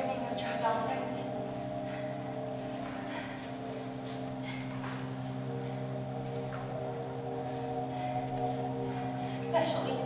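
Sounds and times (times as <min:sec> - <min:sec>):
low chord drone: 0:00.0 - 0:10.0.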